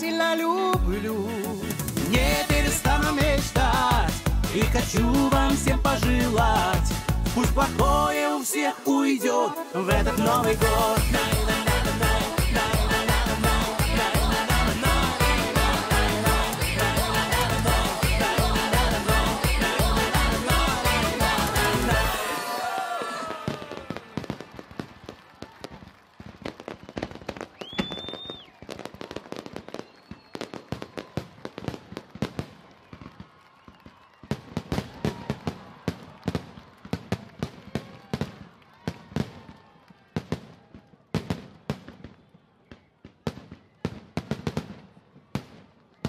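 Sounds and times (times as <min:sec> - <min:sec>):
song playing: 0:00.0 - 0:23.3
fireworks bursting and crackling: 0:01.1 - 0:08.9, 0:09.7 - 0:46.0
firework whistle: 0:26.6 - 0:31.4.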